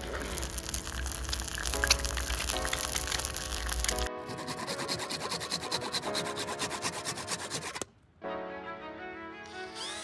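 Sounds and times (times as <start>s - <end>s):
background music: 0.0s - 10.0s
saw cutting plastic pipe: 4.2s - 7.9s.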